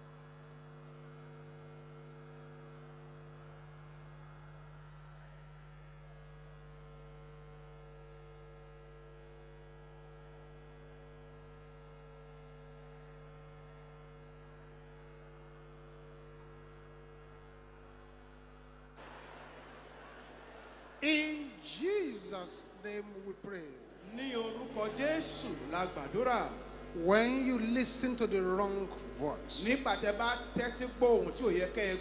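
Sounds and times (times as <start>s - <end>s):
electrical mains hum: 0.0s - 32.0s.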